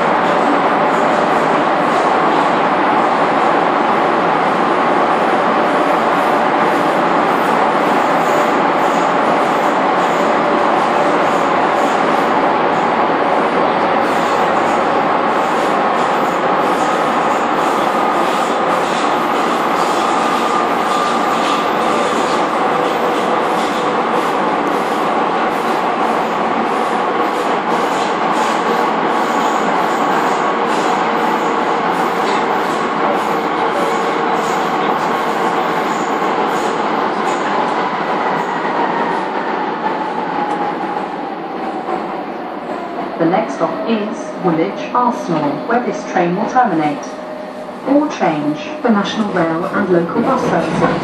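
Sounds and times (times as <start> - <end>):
train wheel-on-rail rumble: 0.0 - 51.0.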